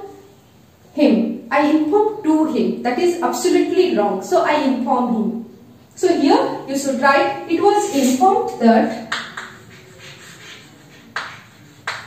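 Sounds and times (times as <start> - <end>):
chalk writing on blackboard: 7.7 - 12.0
chalk tapping on board: 9.1 - 12.0.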